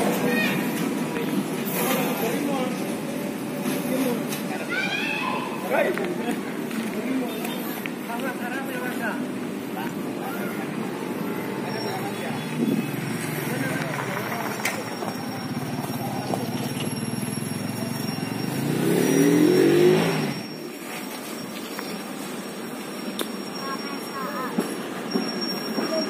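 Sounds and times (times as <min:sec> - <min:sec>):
diesel engine of rail car: 0:00.0 - 0:26.0.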